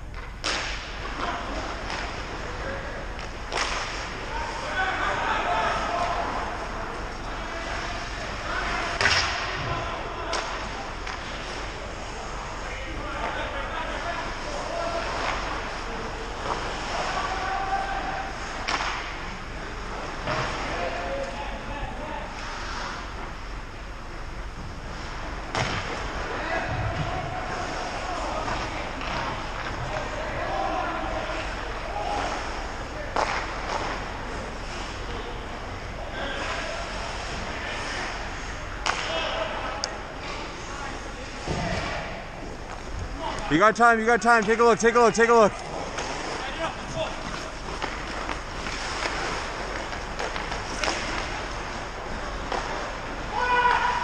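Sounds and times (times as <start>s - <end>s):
hockey sticks and puck cracking: 0.1s - 21.4s, 24.6s - 54.0s
players calling: 0.6s - 54.0s.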